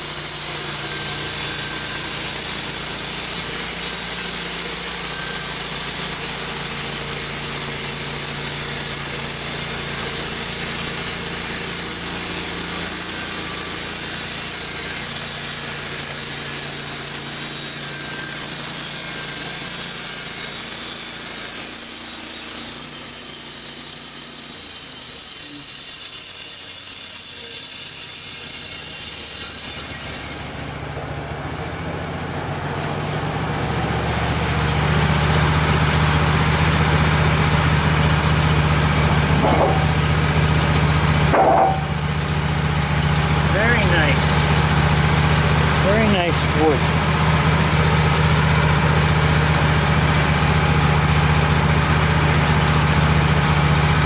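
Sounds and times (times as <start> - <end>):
saw blade cutting log: 0.0 - 31.1, 34.5 - 54.0
sawmill engine running: 0.0 - 54.0
board knocks: 39.4 - 39.9, 41.3 - 41.8.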